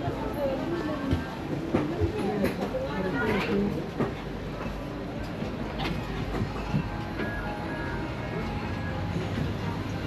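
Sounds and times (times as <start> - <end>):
people talking: 0.0 - 4.2.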